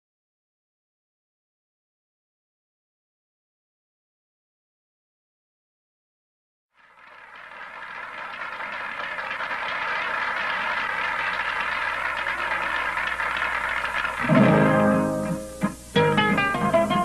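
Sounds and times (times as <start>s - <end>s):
audience applause: 6.8s - 15.5s.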